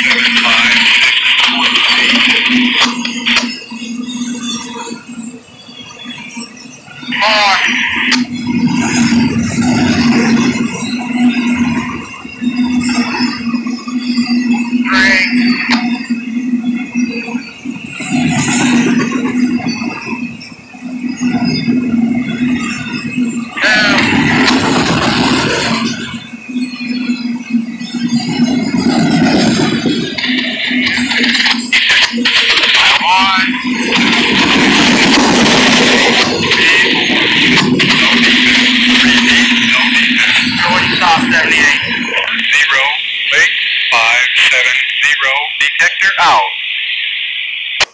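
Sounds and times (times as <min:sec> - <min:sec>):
train rolling rumble: 0:08.2 - 0:13.2, 0:21.2 - 0:27.0, 0:27.9 - 0:42.3.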